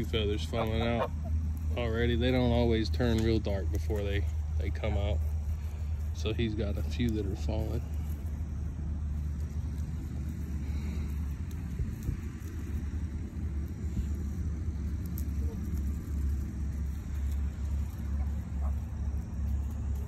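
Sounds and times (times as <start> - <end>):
low fluttering rumble: 0.0 - 20.0.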